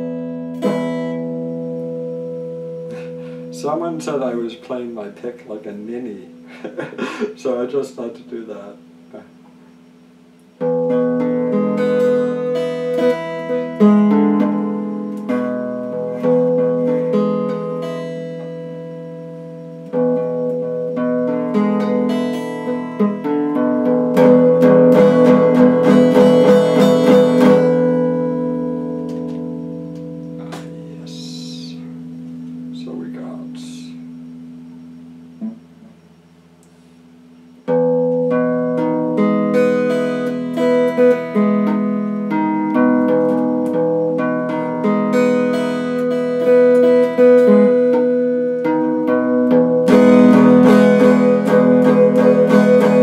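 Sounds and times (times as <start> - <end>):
electric guitar picked notes: 0.0 - 53.0.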